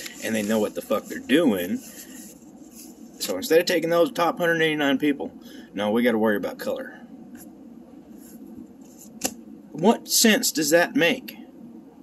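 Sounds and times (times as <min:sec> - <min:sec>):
marker scratching on paper: 0:00.0 - 0:03.3, 0:08.2 - 0:09.2.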